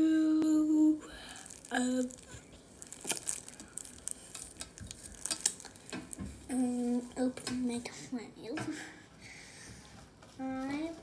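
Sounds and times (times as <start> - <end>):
packaging clicks and crinkling: 1.2 - 7.7.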